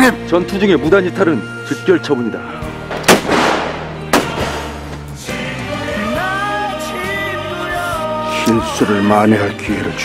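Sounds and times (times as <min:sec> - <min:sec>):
loud gunshots: 0:02.9 - 0:04.8.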